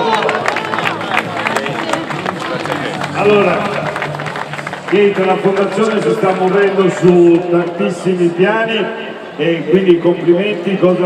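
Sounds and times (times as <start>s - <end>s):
crowd applauding: 0.0s - 7.4s
background music: 0.0s - 8.5s.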